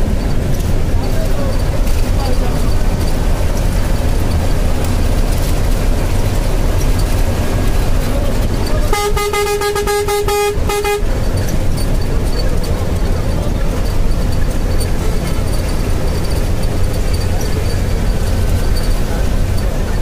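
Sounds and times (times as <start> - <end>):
vehicle road and engine rumble: 0.0 - 20.0
vehicle horn blasts: 8.7 - 11.2.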